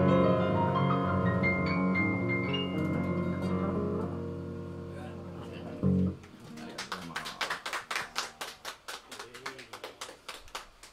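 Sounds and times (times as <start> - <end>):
sparse applause: 6.4 - 10.9.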